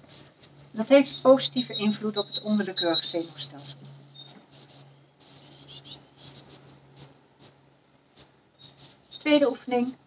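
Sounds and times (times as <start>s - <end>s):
songbird chirping: 0.0s - 10.0s.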